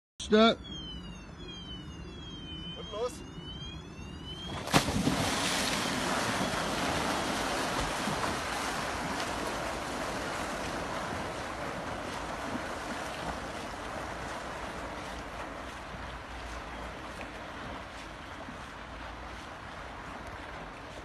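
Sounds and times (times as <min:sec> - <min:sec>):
rush of churned water: 0:04.6 - 0:21.0.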